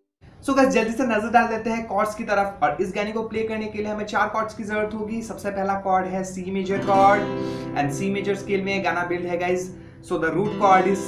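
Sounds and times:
acoustic guitar chord ringing: 0:06.7 - 0:11.0.

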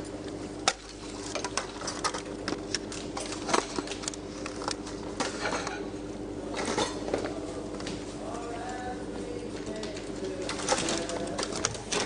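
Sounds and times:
clicks and rustling of eating: 0:00.0 - 0:05.9, 0:06.5 - 0:12.0
steady hum: 0:00.0 - 0:12.0.

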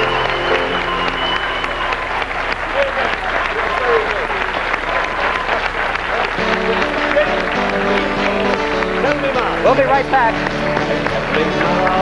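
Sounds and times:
audience applauding: 0:00.0 - 0:12.0
voices calling out: 0:00.0 - 0:12.0.

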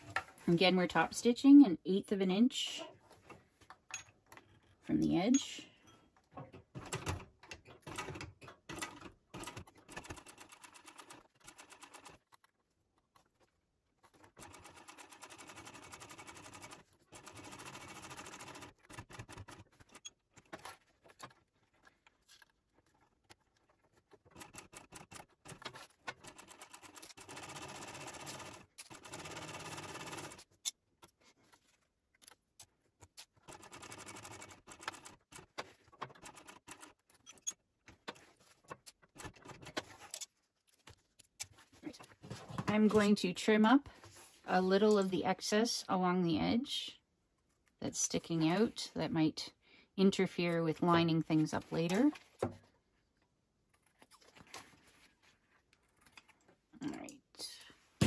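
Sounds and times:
sewing machine stitching: 0:06.7 - 0:12.3, 0:14.0 - 0:20.5, 0:24.2 - 0:30.5, 0:33.4 - 0:37.4.

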